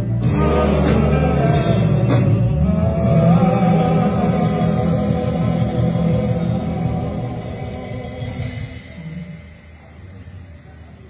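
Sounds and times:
person singing: 0:00.0 - 0:09.5
bass: 0:00.0 - 0:11.0.

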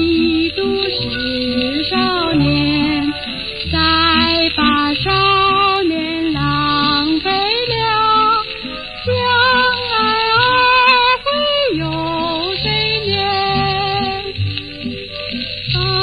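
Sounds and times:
old pop song in waltz time: 0:00.0 - 0:16.0.

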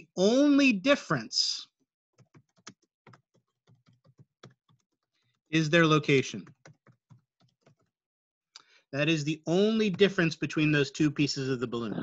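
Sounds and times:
typing on computer keyboard: 0:02.2 - 0:05.4, 0:06.4 - 0:08.0.

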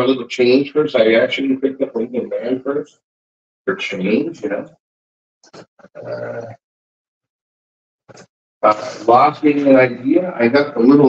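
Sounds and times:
man saying uhh: 0:00.0 - 0:02.8, 0:03.7 - 0:04.6, 0:08.6 - 0:10.2.

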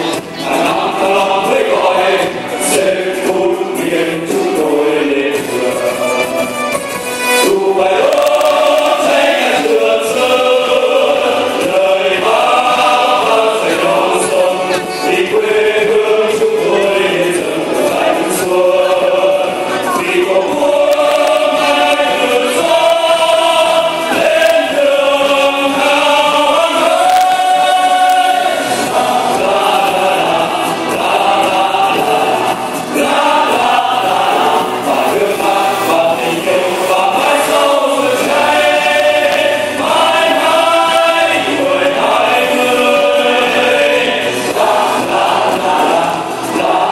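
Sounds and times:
men's choir singing: 0:00.0 - 0:46.9
musical accompaniment: 0:00.0 - 0:46.9.

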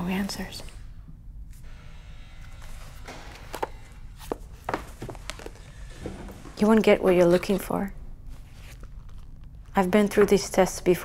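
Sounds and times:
low room rumble: 0:00.0 - 0:11.0.

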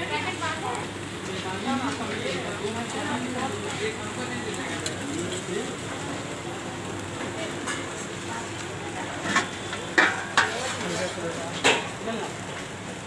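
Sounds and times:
food sizzling on a griddle: 0:00.0 - 0:13.0.

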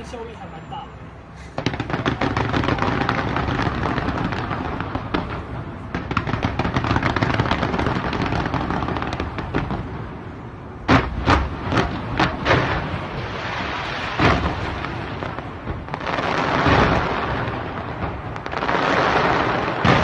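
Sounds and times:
fireworks cracking and banging: 0:01.5 - 0:20.0.

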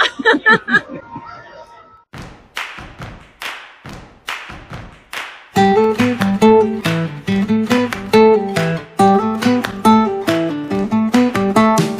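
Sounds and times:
person laughing: 0:00.0 - 0:01.4
acoustic guitar strumming: 0:05.6 - 0:11.9.

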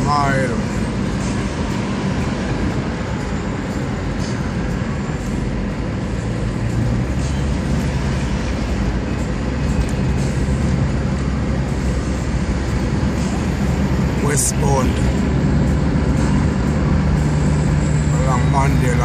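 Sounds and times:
engine and tyre rumble: 0:00.0 - 0:19.0.

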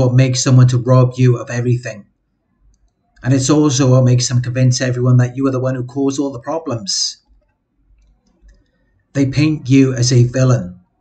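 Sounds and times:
man speaking: 0:00.0 - 0:02.1, 0:03.2 - 0:07.3, 0:09.1 - 0:10.9
faint clicks: 0:02.6 - 0:03.3, 0:07.2 - 0:09.1.

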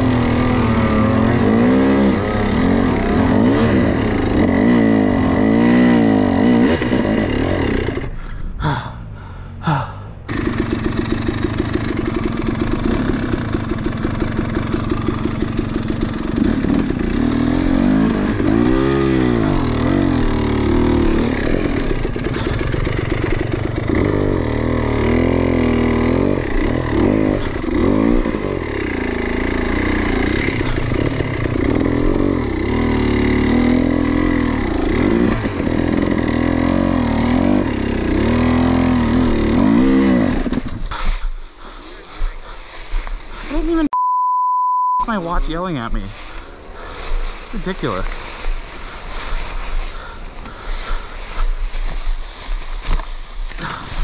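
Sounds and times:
dirt bike engine revving: 0:00.0 - 0:08.3, 0:10.3 - 0:44.0, 0:45.0 - 0:54.0.

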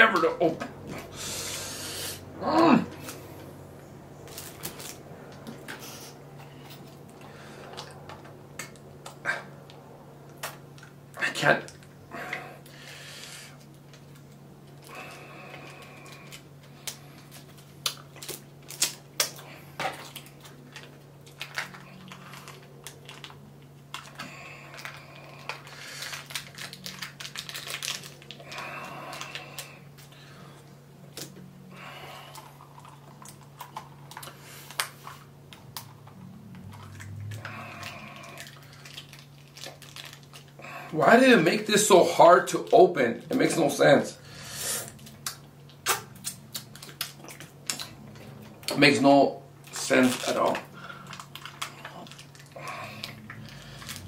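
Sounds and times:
steady low hum: 0:00.0 - 0:54.0
plastic cups clicking and crinkling: 0:13.6 - 0:30.2, 0:32.3 - 0:40.6, 0:49.7 - 0:54.0.

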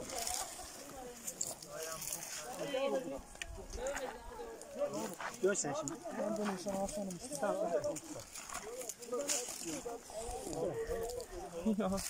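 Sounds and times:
brush and twigs crackling: 0:00.0 - 0:12.0
people talking indistinctly: 0:00.0 - 0:12.0.

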